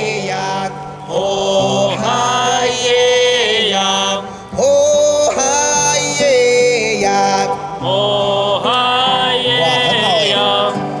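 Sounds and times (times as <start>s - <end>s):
classical guitar: 0.0s - 11.0s
man singing slow melody: 0.0s - 11.0s.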